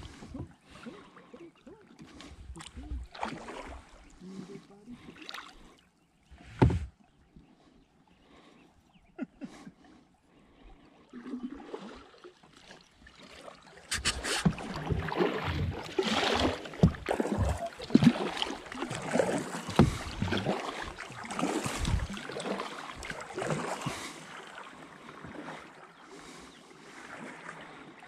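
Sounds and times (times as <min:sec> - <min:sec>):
paddle splashing in water: 0:00.0 - 0:05.8, 0:11.1 - 0:28.0.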